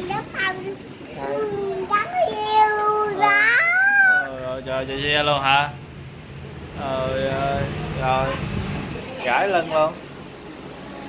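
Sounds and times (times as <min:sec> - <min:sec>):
child making wavering vocal sounds: 0:01.2 - 0:04.3.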